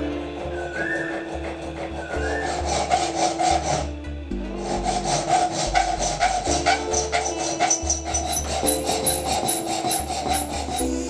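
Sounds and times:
background music: 0.0s - 11.0s
file rasping on metal: 0.4s - 3.9s, 4.6s - 11.0s.

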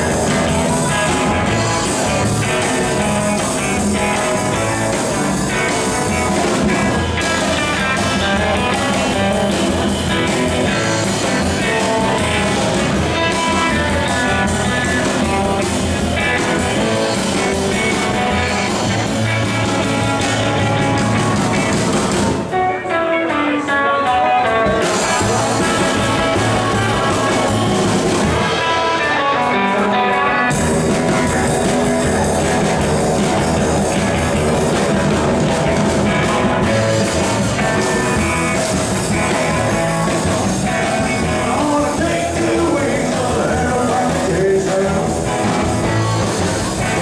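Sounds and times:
upright double bass: 0.0s - 22.4s, 24.8s - 28.5s, 30.5s - 47.0s
drum kit: 0.0s - 47.0s
electric guitar: 0.0s - 47.0s
live rockabilly band playing: 0.0s - 47.0s.

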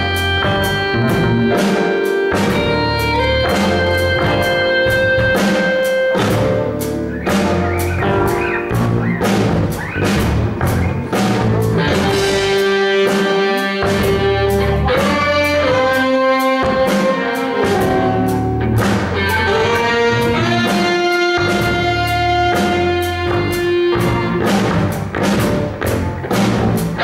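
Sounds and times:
drum kit: 0.0s - 27.0s
electric bass: 0.0s - 27.0s
electric guitars: 0.0s - 27.0s
saxophones holding long notes: 11.8s - 24.2s.

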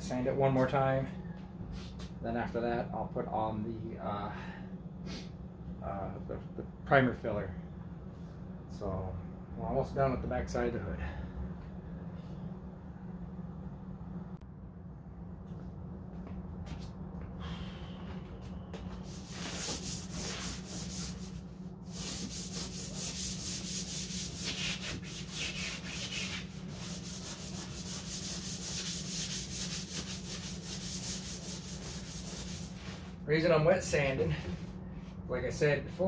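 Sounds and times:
hand sanding with sandpaper: 18.9s - 33.6s.

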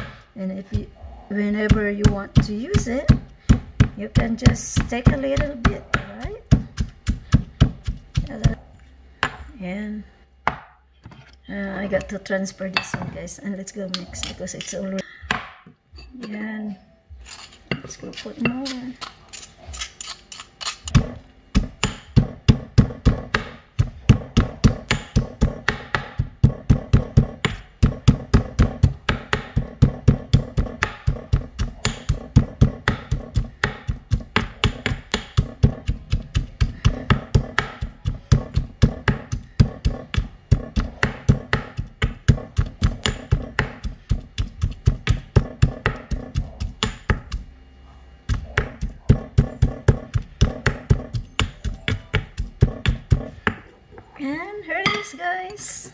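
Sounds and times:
pestle pounding in stone mortar: 1.7s - 8.6s, 20.9s - 47.5s, 48.2s - 53.7s.

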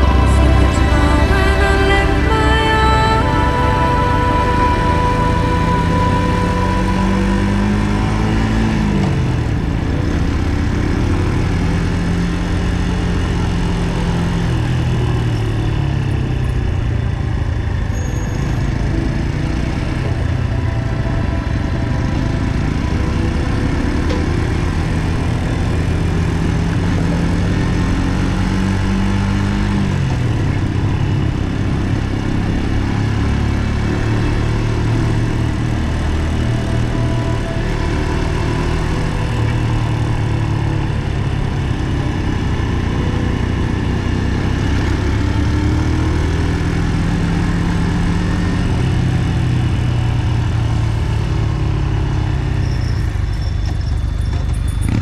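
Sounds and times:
motorcycle engine running: 0.0s - 55.0s
wind and road noise: 0.0s - 55.0s.

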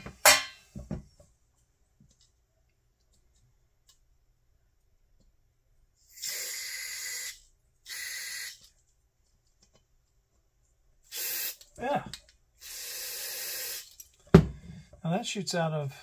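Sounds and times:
aerosol spray bursts: 6.1s - 8.6s, 11.1s - 11.6s, 12.6s - 14.0s.

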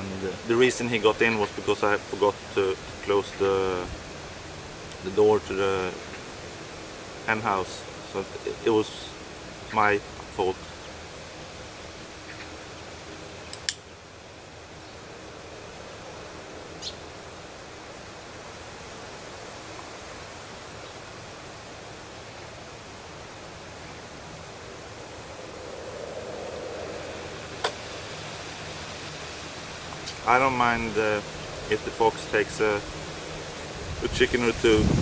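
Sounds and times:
outdoor background hiss: 0.0s - 35.0s.

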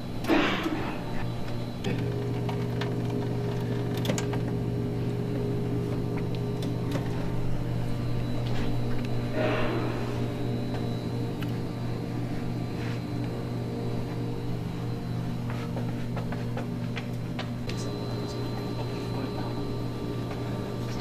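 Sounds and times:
buzzy electrical hum: 0.0s - 21.0s.

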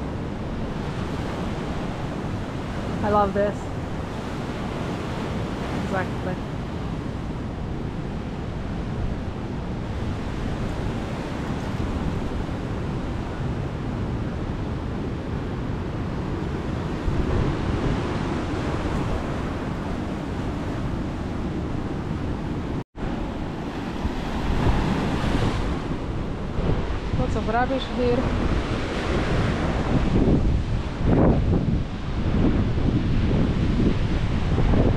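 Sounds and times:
wind buffeting microphone: 0.0s - 34.9s
surf washing onto beach: 15.8s - 34.9s.

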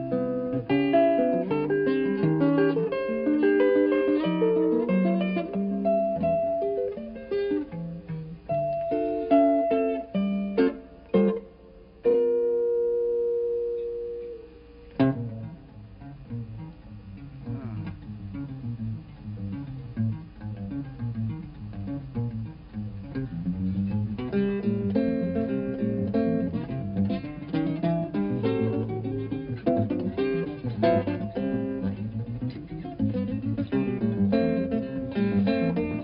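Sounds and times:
guitar bass line: 0.0s - 11.4s, 12.0s - 36.0s
jazz guitar chords and melody: 0.0s - 36.0s.

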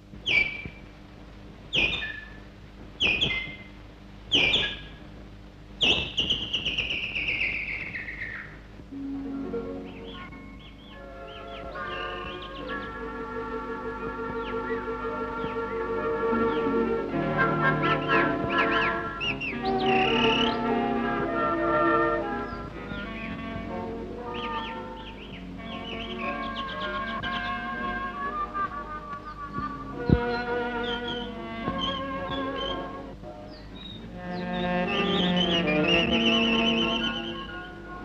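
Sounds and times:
chirping whistle-like glides: 1.8s - 2.4s, 3.0s - 3.7s, 4.3s - 5.0s, 5.8s - 8.6s, 9.8s - 23.4s, 24.2s - 33.0s, 33.8s - 38.0s
cartoon instrumental music: 8.9s - 38.0s.

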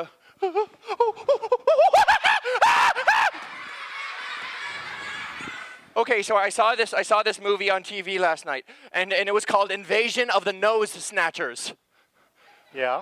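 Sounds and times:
high-pitched laughter: 0.4s - 5.9s.

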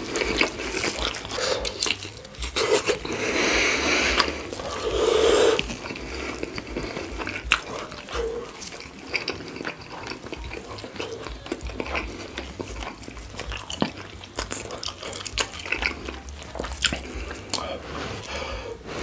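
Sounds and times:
wet chewing and mouth sounds: 0.0s - 19.0s.

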